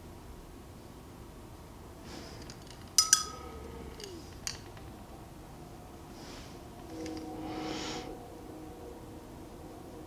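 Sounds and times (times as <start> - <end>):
paintbrush clinking on container: 2.7 - 3.5.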